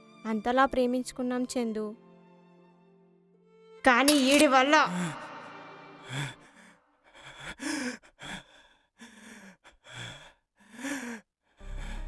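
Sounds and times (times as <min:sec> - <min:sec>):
person gasping and breathing heavily: 0:04.1 - 0:12.0.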